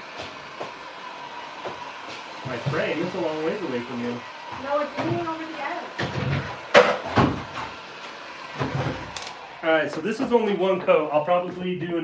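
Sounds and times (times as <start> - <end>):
knocks on a wooden table: 6.0 - 7.5.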